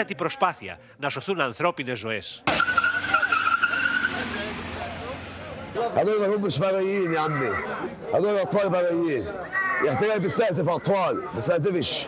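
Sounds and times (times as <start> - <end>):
noisy crowd shouting: 5.7 - 12.0.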